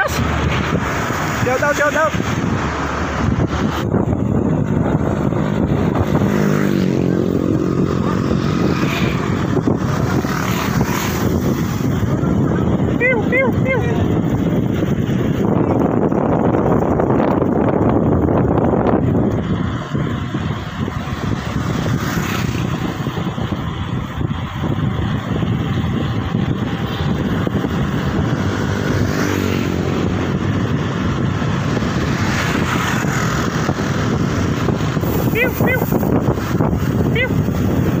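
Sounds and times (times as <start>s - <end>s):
road noise: 0.0s - 38.0s
wind rushing over microphone: 0.0s - 38.0s.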